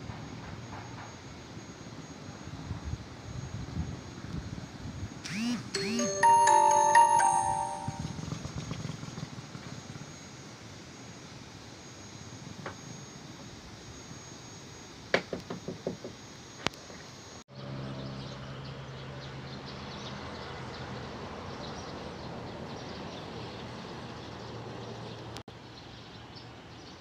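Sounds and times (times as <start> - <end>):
outdoor background noise: 0.0 - 7.0, 7.8 - 27.0
chime-like notes ringing: 5.7 - 8.2.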